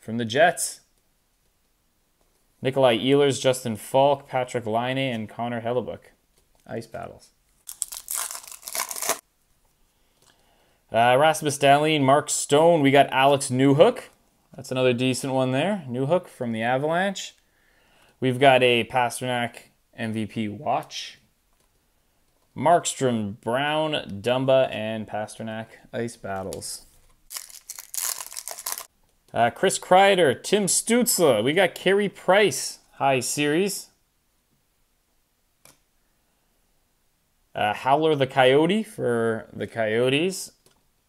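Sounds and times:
foil wrapper crinkling: 7.6s - 9.2s, 27.3s - 28.9s.

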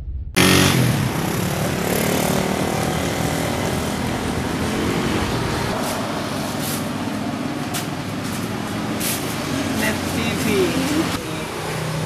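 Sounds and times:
street traffic engine hum: 0.4s - 12.0s.

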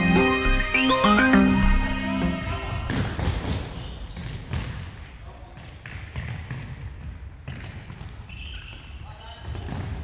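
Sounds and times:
shoes squeaking on floor: 7.7s - 9.8s.

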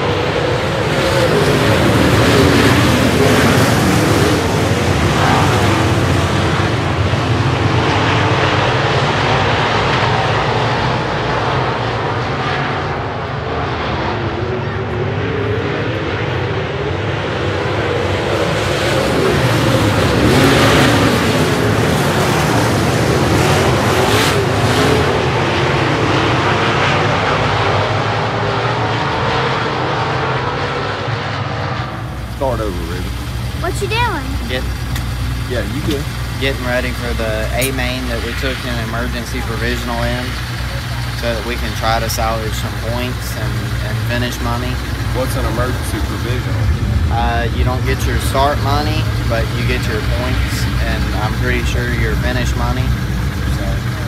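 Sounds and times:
low engine hum: 0.0s - 54.0s
race car engines at high revs: 0.0s - 54.0s
voices: 32.0s - 54.0s.

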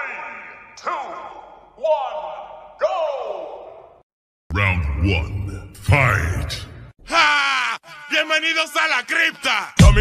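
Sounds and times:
announcer voice with echo: 4.5s - 10.0s.

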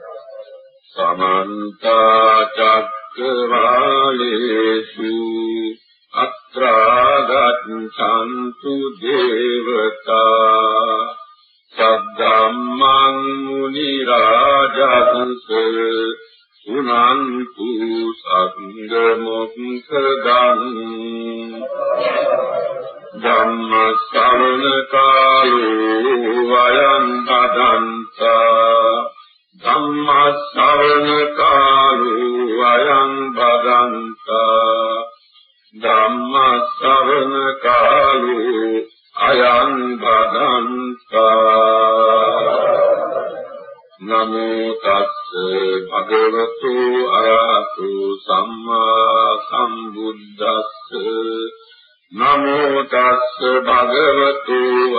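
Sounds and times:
person chanting: 0.0s - 54.9s.

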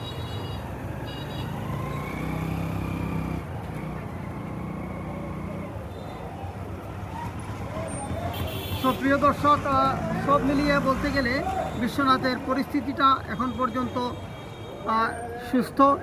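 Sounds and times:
motorcycles passing: 0.0s - 16.0s
street hum: 0.0s - 16.0s
car passing: 0.9s - 13.0s.

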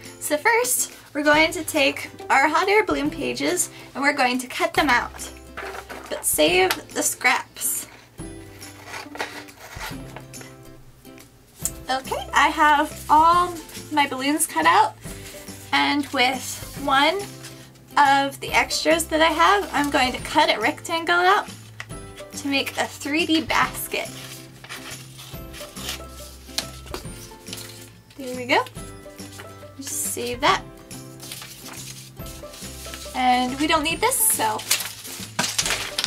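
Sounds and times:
background music sustained notes: 0.0s - 36.0s
paper rustling: 4.6s - 10.6s, 12.5s - 17.9s, 21.4s - 28.1s, 29.2s - 29.6s, 31.0s - 36.0s.

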